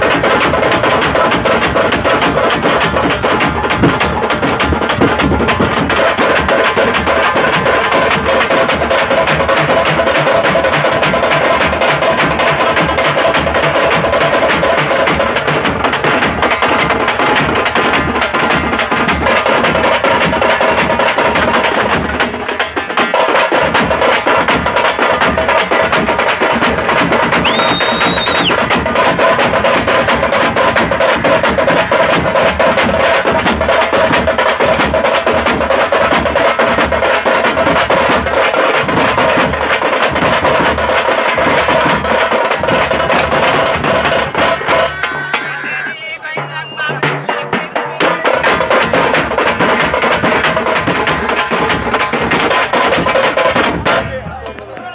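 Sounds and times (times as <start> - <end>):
drum band beating fast rhythm: 0.0 - 54.9
short high steady tone: 44.7 - 47.0.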